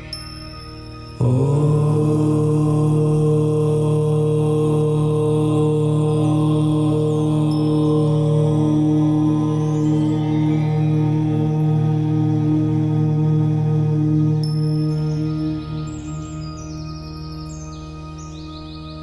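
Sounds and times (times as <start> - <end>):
soft ambient meditation music: 0.0 - 19.0
low voice chanting held note: 1.2 - 15.7.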